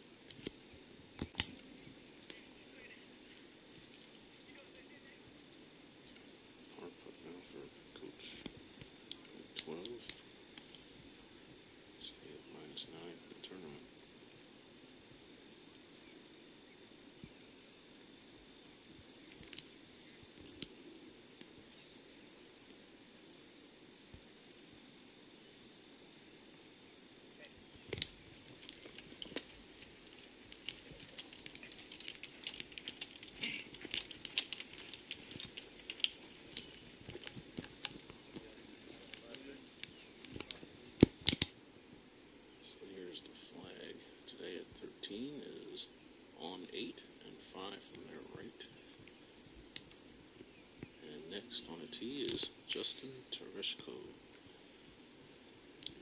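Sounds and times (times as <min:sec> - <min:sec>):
insect drone: 0:00.0 - 0:56.0
crinkling and crackling clicks: 0:00.3 - 0:00.6, 0:01.2 - 0:02.5, 0:03.3 - 0:05.1, 0:07.6 - 0:10.9, 0:18.5 - 0:21.6, 0:27.4 - 0:41.6, 0:49.0 - 0:50.0, 0:52.0 - 0:52.8, 0:55.8 - 0:56.0.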